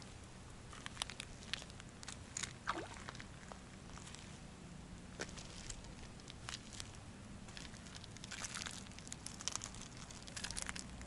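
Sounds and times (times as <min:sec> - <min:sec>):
footsteps on pebbles: 0:05.2 - 0:10.9.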